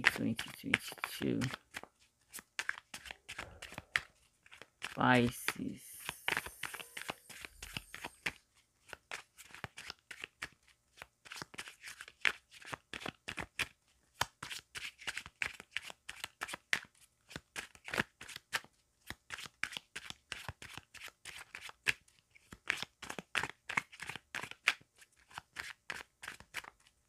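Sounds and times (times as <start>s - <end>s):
cards being shuffled by hand: 0.0s - 27.0s.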